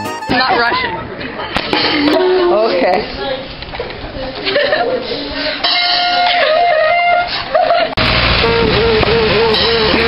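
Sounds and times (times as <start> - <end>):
street noise: 0.0 - 10.0
truck engine rumbling: 8.0 - 10.0.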